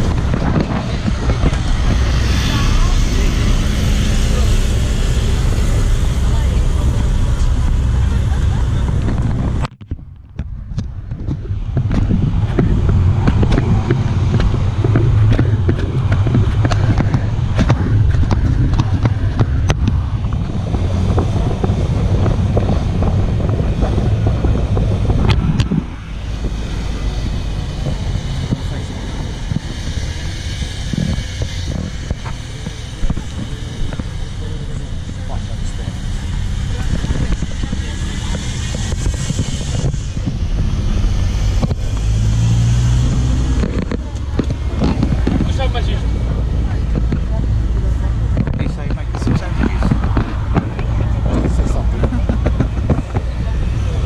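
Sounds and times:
vehicle engine rumble: 0.0 - 54.0
wind: 0.0 - 54.0.

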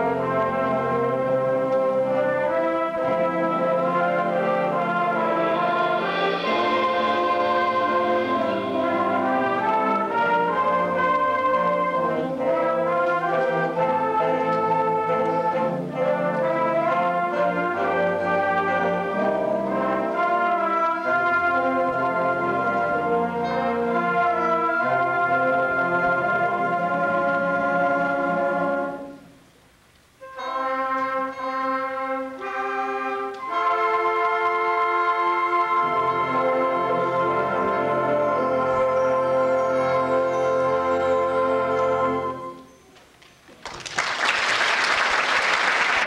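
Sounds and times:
concert band playing: 0.0 - 29.2.

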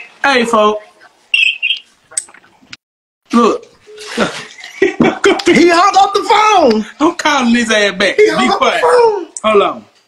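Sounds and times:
high electronic phone beeps: 1.3 - 1.9.

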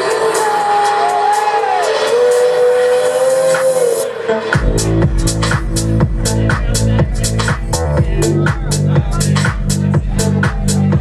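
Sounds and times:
synth notes bending in pitch: 1.5 - 11.0.

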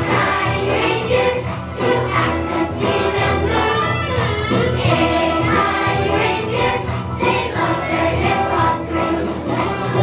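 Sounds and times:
children's choir singing: 0.0 - 10.0
musical accompaniment: 0.0 - 10.0.

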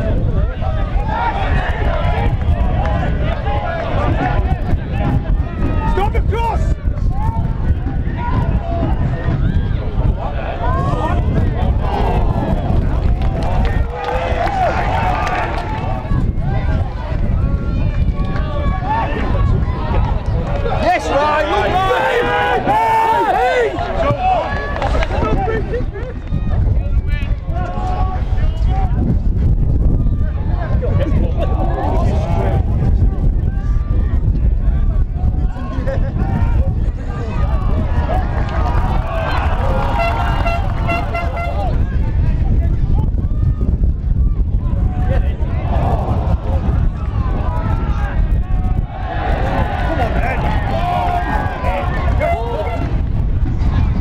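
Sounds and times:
steady low rumble: 0.0 - 54.0
people shouting: 20.6 - 25.6, 37.2 - 41.8, 44.7 - 53.0
indistinct shouts: 20.8 - 24.6.

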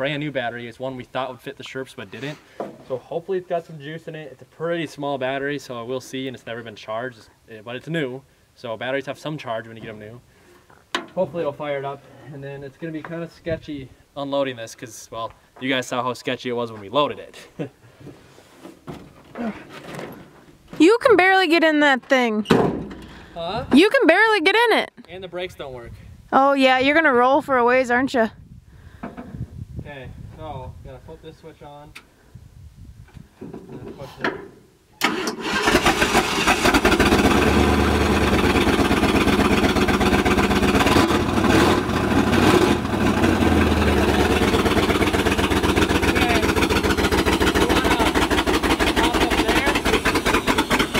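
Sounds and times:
man grunting and breathing: 19.3 - 19.7
engine idling loudly: 36.6 - 50.9.

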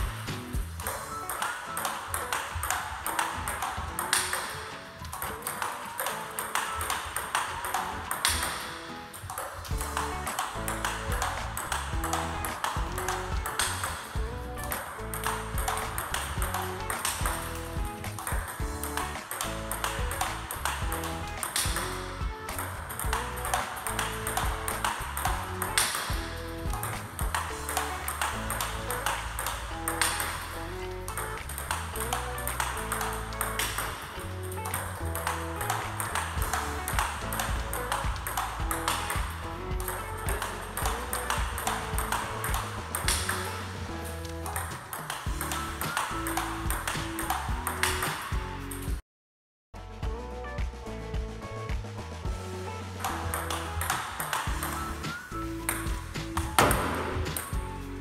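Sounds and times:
table tennis ball clicks: 0.0 - 48.9, 53.0 - 57.7
background music: 0.0 - 49.0, 49.8 - 58.0.

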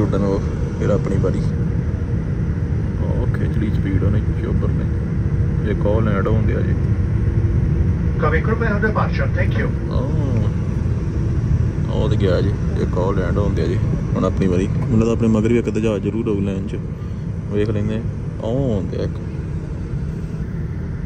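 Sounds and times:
jet engines rumbling: 0.0 - 21.0
voices talking: 7.9 - 20.3.

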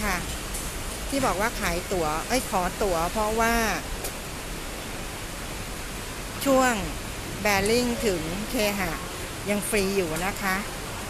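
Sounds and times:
heavy rain hissing: 0.0 - 11.0.

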